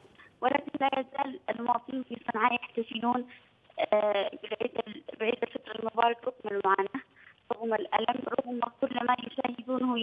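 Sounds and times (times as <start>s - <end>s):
woman talking over telephone: 0.0s - 10.0s.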